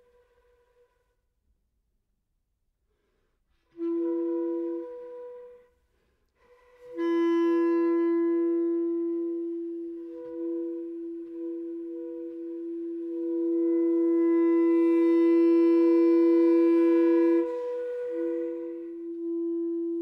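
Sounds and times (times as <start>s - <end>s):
clarinets holding long tones: 7.7s - 20.0s.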